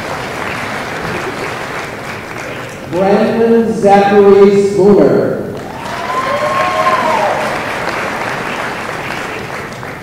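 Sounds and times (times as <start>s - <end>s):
audience applauding: 0.0s - 3.0s, 5.6s - 10.0s
drawn-out cheer: 5.6s - 9.5s.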